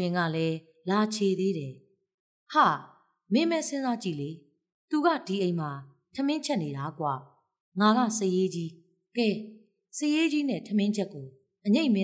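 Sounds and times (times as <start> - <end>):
woman narrating: 0.0 - 1.8, 2.5 - 7.2, 7.8 - 12.0.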